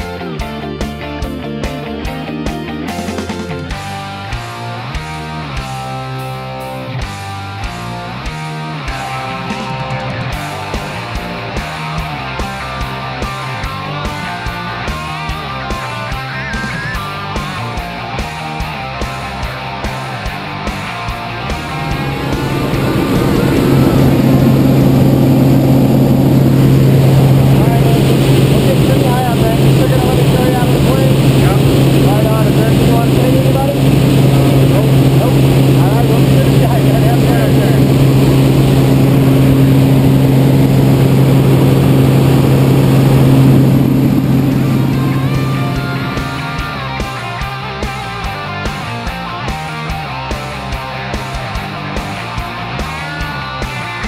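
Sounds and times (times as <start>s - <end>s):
plane engine and propeller drone: 0.0s - 54.0s
rock music: 0.0s - 54.0s.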